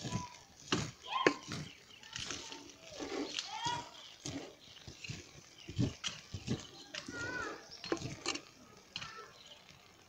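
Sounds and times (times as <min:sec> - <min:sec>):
wooden spoon stirring porridge in pot: 0:00.0 - 0:10.0.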